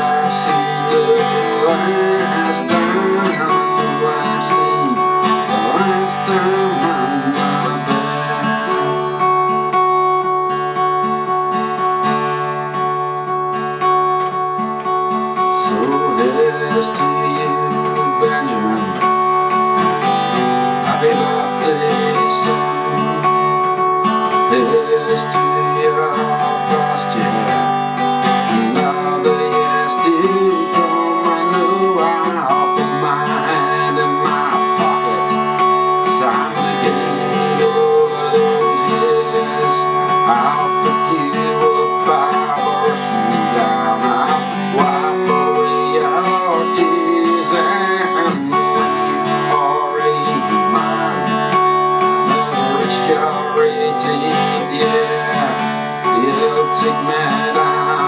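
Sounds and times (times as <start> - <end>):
acoustic guitar strumming chords: 0.0 - 58.0
wavering melody line: 0.0 - 58.0.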